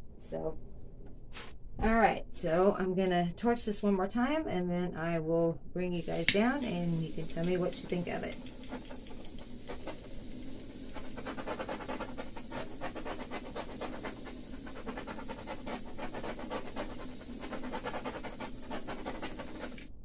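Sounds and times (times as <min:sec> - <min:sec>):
butane torch flame hissing: 0:05.9 - 0:20.0.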